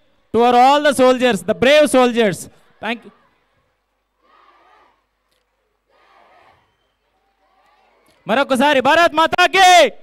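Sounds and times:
crowd shouting in unison: 2.6 - 5.2, 5.8 - 8.3.

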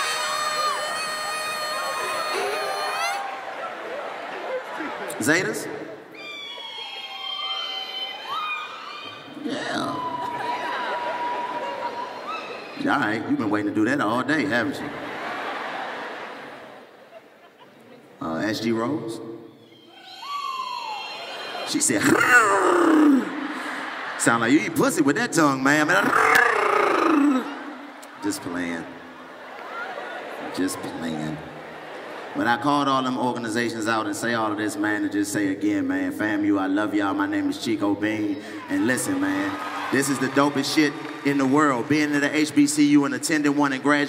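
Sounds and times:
women giving high held cries: 0.0 - 3.8, 6.1 - 12.8, 19.6 - 23.6, 25.9 - 27.9.

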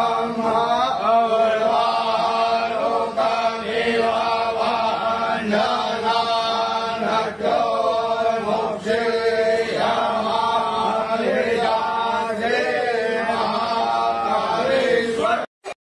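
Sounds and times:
devotional chanting: 0.0 - 15.5.

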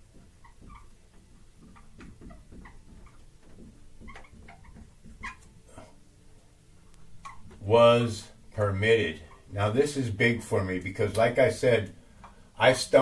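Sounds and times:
marker squeaking on whiteboard: 0.0 - 5.9, 7.0 - 7.8, 9.0 - 9.6.

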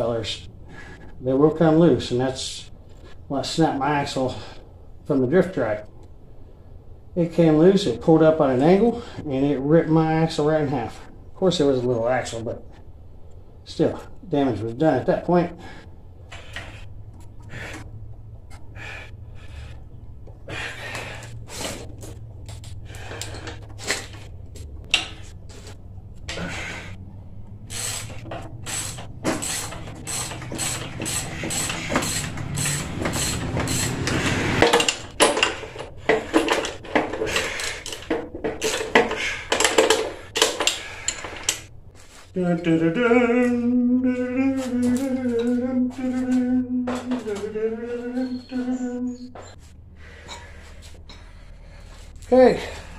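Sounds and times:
person humming: 42.3 - 49.5.

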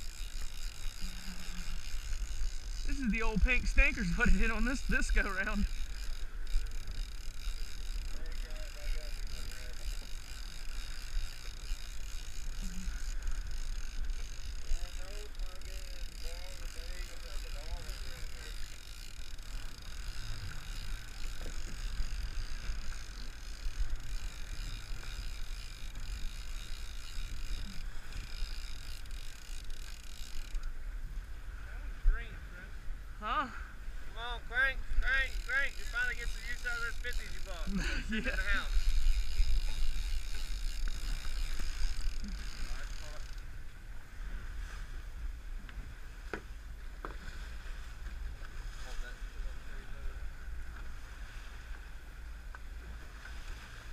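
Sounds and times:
water noise: 0.0 - 53.9
wind: 0.0 - 53.9
people's voices and laughter: 37.4 - 38.7.

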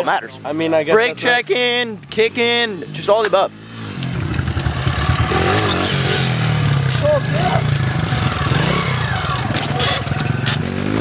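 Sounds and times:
small motorcycle engine running: 4.1 - 11.0
faint voices: 6.9 - 10.5.

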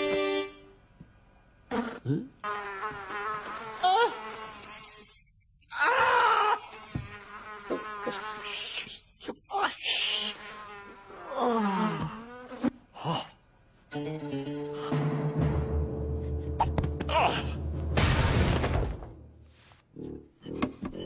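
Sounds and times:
moans and grunts: 11.2 - 12.1, 17.0 - 17.7.

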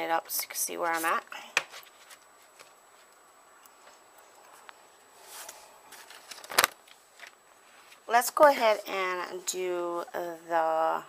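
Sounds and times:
paper rustle: 0.8 - 3.1.

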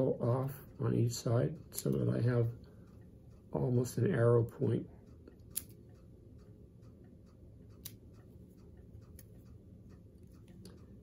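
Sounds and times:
scissors snipping: 5.4 - 5.8, 7.8 - 8.1, 9.0 - 9.5.

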